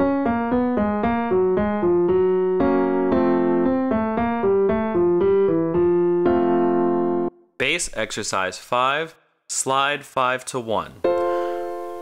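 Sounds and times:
piano single notes: 0:00.0 - 0:07.4, 0:11.0 - 0:12.0.

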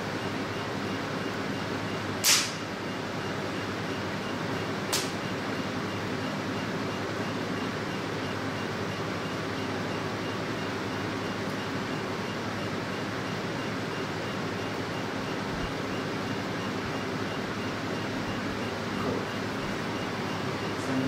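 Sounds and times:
machine cooling fan hum: 0:00.0 - 0:21.0.

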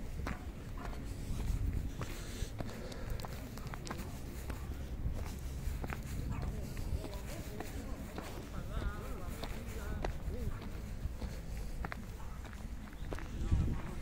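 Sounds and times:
footsteps on gritty ground: 0:00.0 - 0:14.0.

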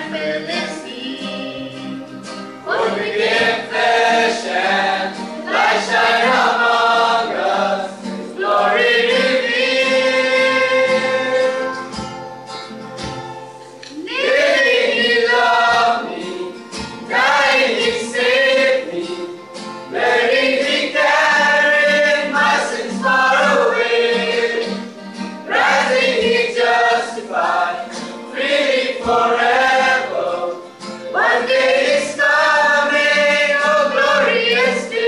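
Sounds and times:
voices singing gospel in harmony: 0:00.0 - 0:12.1, 0:13.9 - 0:35.0.

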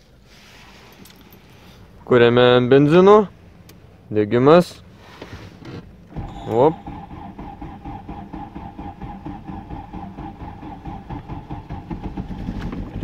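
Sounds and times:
car engine idling with whine: 0:00.0 - 0:13.0.

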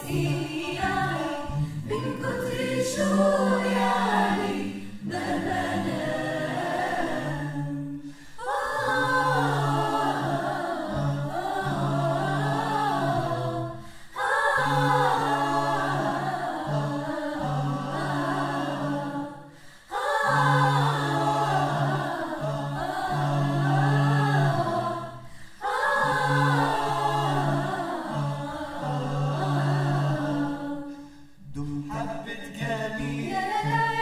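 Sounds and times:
mixed choir singing a cappella: 0:00.0 - 0:34.0.

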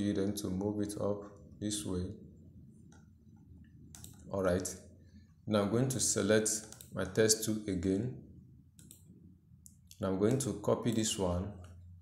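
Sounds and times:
computer mouse clicks: 0:02.8 - 0:04.3, 0:06.5 - 0:07.0, 0:08.8 - 0:11.8.

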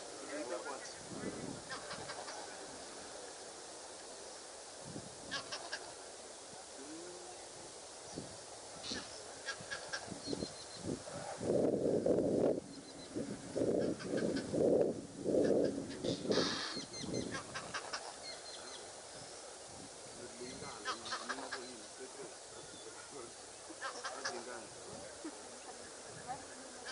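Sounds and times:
high twittering chirps: 0:16.0 - 0:17.4
bird hoarse honks: 0:20.7 - 0:21.8, 0:23.8 - 0:24.5.

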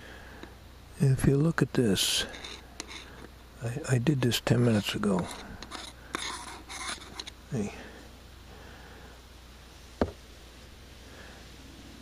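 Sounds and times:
screwdriver scraping metal can: 0:02.3 - 0:03.3, 0:04.6 - 0:07.4.

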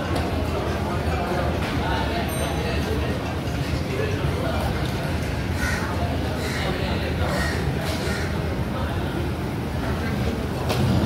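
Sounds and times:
faint chatter of diners: 0:00.0 - 0:11.0.

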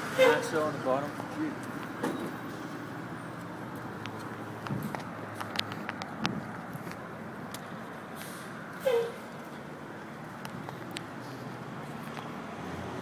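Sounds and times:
traffic noise: 0:00.0 - 0:13.0.

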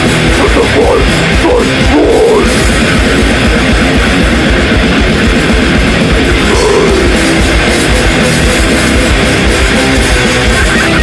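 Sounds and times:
rapid low drum hits: 0:00.0 - 0:10.6
distorted electric guitars: 0:00.0 - 0:11.0
electric bass: 0:00.0 - 0:11.0.

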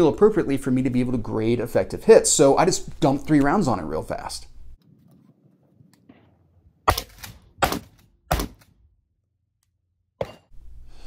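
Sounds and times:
shotgun shots at steel target: 0:06.9 - 0:08.6.

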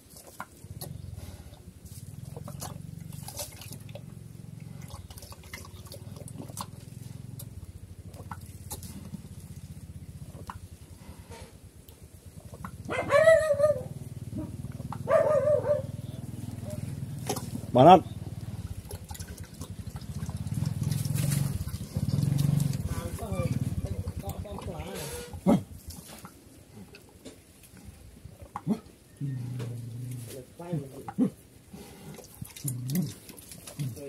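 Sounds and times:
pig slurping and chewing: 0:00.0 - 0:13.0, 0:13.9 - 0:15.1, 0:15.9 - 0:34.0
steady low hum: 0:00.0 - 0:34.0.

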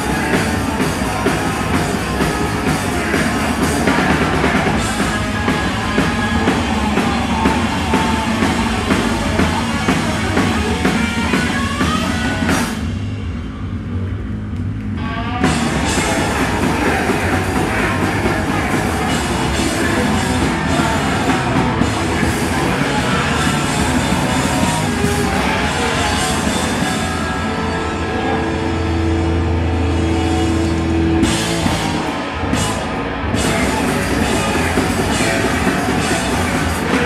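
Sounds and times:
drum kit with cymbals: 0:00.0 - 0:13.4, 0:15.4 - 0:27.6, 0:29.9 - 0:37.0
bass guitar: 0:00.0 - 0:37.0
distorted electric guitar: 0:00.0 - 0:37.0.

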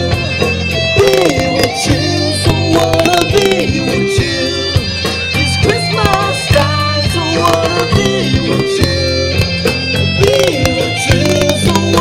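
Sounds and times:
lead guitar bending notes: 0:00.0 - 0:12.0
live rock band: 0:00.0 - 0:12.0.

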